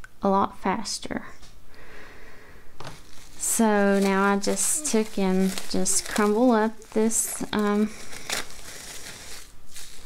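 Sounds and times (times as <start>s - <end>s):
plastic wrap crinkling: 2.8s - 10.0s.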